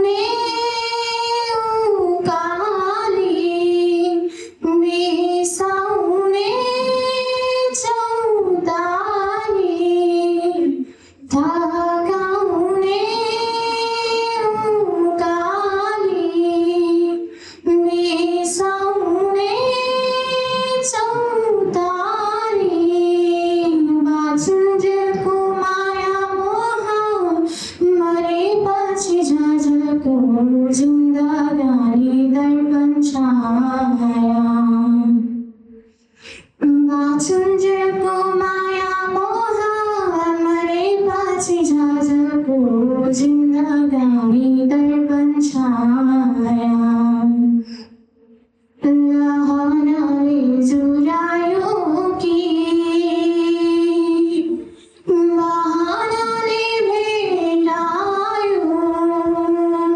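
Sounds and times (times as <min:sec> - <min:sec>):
woman singing unaccompanied: 0:00.0 - 0:35.5, 0:36.6 - 0:47.8, 0:48.8 - 0:59.9.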